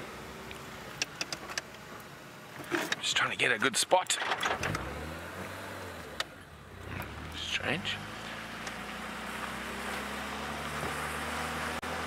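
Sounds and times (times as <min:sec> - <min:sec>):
vehicle engine driving on sand: 0:04.6 - 0:12.0.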